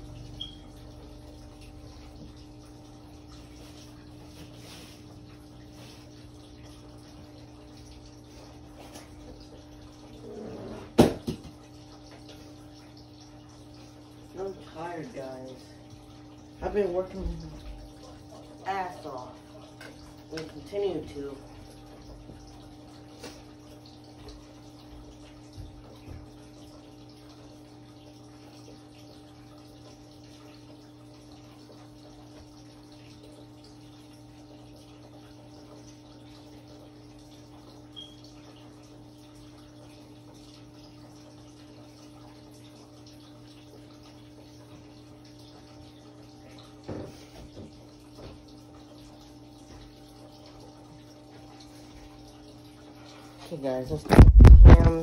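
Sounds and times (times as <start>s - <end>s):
low machine hum: 0.0s - 10.8s.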